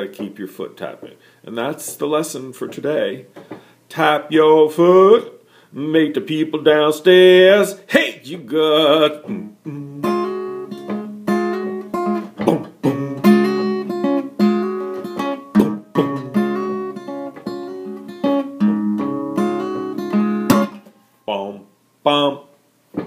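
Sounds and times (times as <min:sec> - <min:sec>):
fingerpicked acoustic guitar: 0:08.6 - 0:21.0
sharp knocks: 0:10.8 - 0:11.1, 0:12.2 - 0:12.8.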